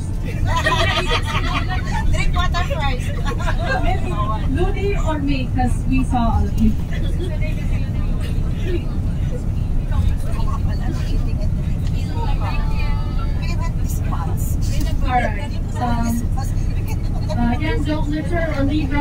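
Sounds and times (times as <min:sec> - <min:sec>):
coach engine and road rumble: 0:00.0 - 0:19.0
passenger voices: 0:00.0 - 0:19.0.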